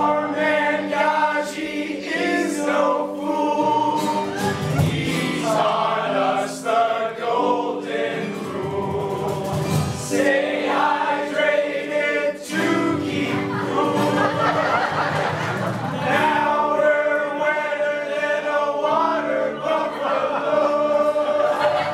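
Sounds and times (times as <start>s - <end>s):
group of teenagers singing in chorus: 0.0s - 21.9s.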